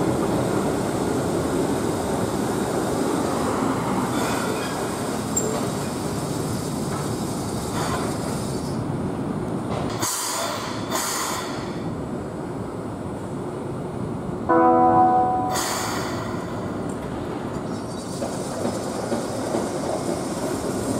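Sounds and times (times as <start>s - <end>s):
train running on track: 0.0s - 20.9s.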